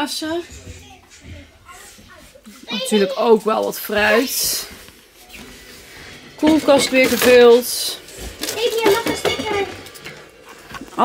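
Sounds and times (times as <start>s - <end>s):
bottles clinking in a fridge: 6.4s - 10.4s.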